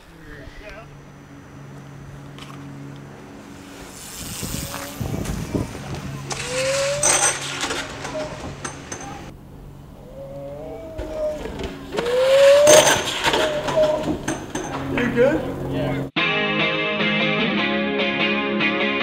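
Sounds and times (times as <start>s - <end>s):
short rising squeals: 0.0s - 15.9s
steady low hum: 0.0s - 16.1s
bike crashing to the ground: 3.9s - 9.3s, 11.0s - 15.2s.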